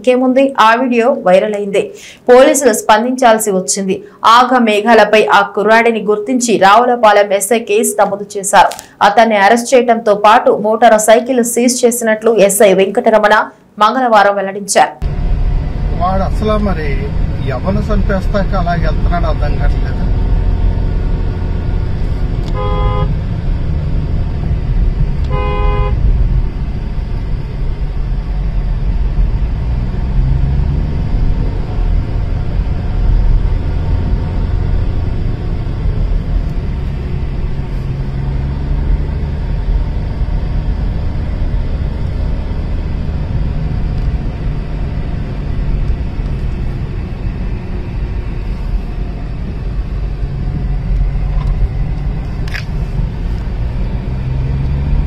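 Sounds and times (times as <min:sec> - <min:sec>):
car engine and road rumble: 0:15.0 - 0:55.0
car horn toots: 0:22.4 - 0:23.2, 0:25.3 - 0:26.1.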